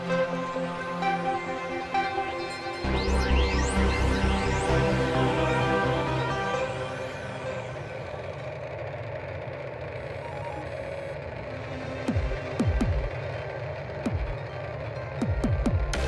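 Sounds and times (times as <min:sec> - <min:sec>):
rushing spacecraft engine noise: 0:00.0 - 0:16.0.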